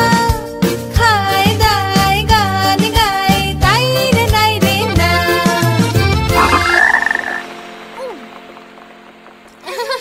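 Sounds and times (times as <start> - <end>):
children's song: 0.0 - 6.6
buzzing trilling sound effect: 6.3 - 7.5.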